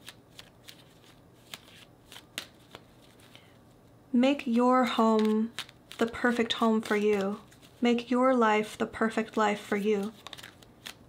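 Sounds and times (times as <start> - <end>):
cards being shuffled: 0.0 - 3.5, 4.4 - 8.0, 9.2 - 11.0.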